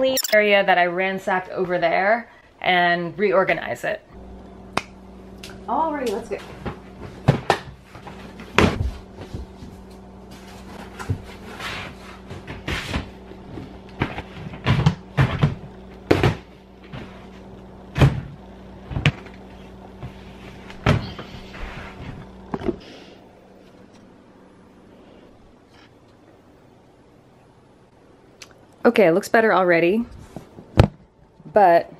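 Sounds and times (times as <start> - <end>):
steady low hum: 0.0 - 31.9
boxes scraping: 10.3 - 15.5.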